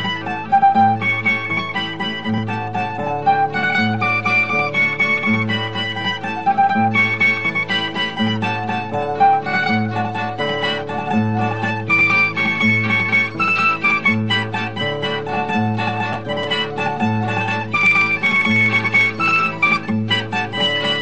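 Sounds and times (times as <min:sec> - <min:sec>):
plucked string ensemble: 0:00.0 - 0:21.0.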